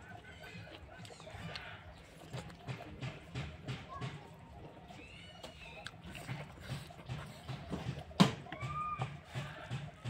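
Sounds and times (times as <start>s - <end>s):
person chewing food: 0.0s - 3.6s, 4.5s - 8.2s.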